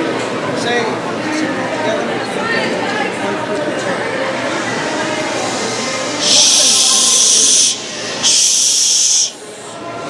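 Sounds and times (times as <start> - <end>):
crowd murmur: 0.0 - 10.0
loud steady hisses: 4.3 - 9.8.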